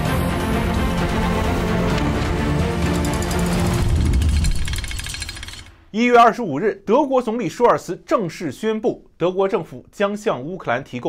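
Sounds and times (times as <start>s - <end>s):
metallic clicking shimmer: 2.8s - 5.8s
man narrating: 5.9s - 11.0s.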